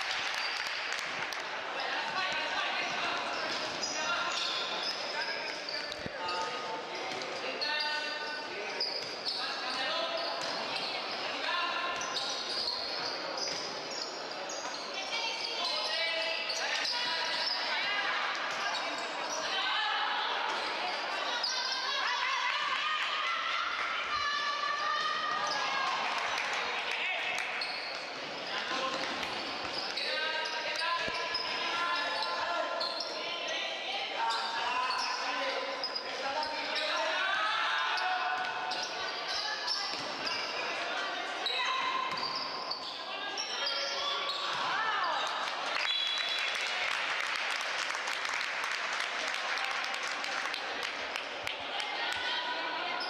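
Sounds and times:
voices in a gym: 0.0 - 53.0
sneakers squeaking on court: 2.0 - 17.7, 27.4 - 33.2, 41.4 - 44.7.

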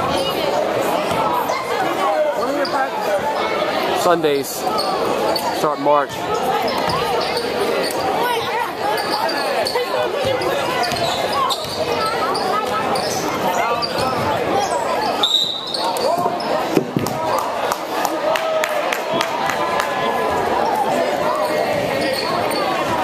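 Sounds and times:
spectators chattering: 0.0 - 23.0.

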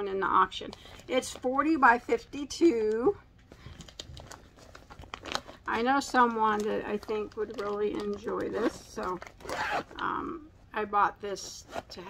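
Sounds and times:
plastic bag crinkling: 3.5 - 10.0.

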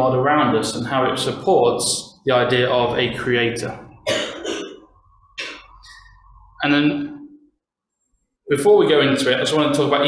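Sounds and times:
man clearing his throat: 4.0 - 4.8.

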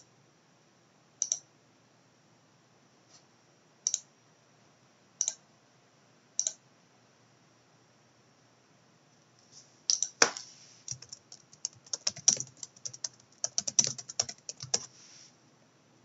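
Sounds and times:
computer mouse button clicking: 1.2 - 1.4, 5.2 - 5.4, 6.4 - 6.6.

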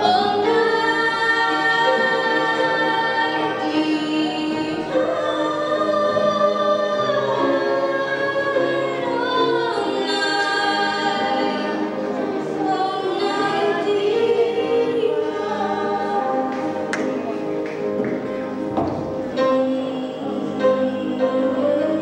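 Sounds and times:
grand piano accompaniment: 0.0 - 22.0.

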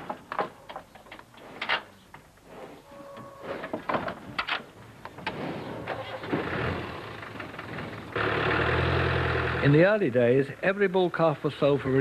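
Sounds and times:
vehicle engine idling: 6.1 - 9.8.

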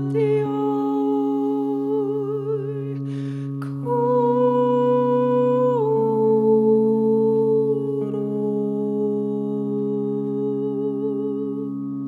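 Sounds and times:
steady low drone: 0.0 - 12.0
woman humming with vibrato: 0.0 - 12.0
woman breathing in: 3.0 - 3.7.

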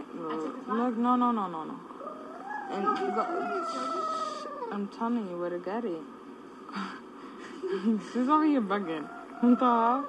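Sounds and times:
toddler whining cry: 2.0 - 4.8.

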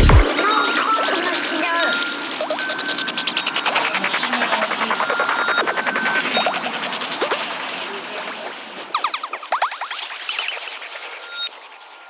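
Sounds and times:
gliding synth squelches: 0.0 - 12.0
pulsing synth texture: 0.0 - 12.0.

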